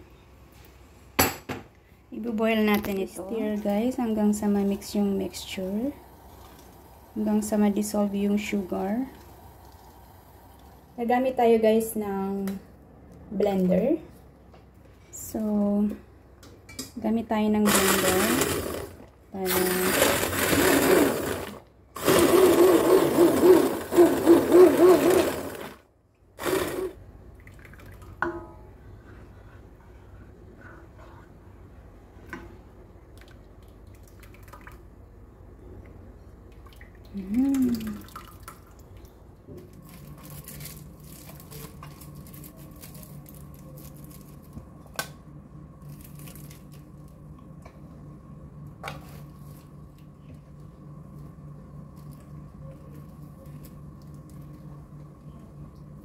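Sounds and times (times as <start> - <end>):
low steady hum: 0.0 - 56.0
stick blender whirring: 17.7 - 25.8, 26.4 - 27.0
plastic bags crinkling: 39.8 - 44.6.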